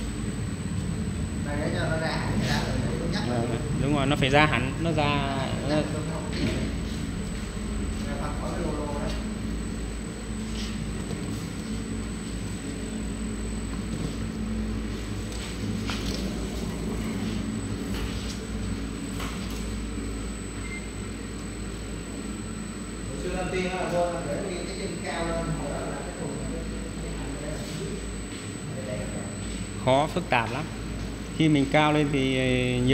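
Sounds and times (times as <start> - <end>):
machine hum: 0.0 - 32.9.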